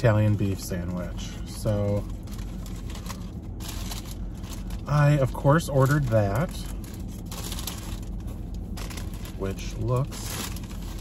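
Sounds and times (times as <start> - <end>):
paper wrapper rustling and crinkling: 0.0 - 11.0.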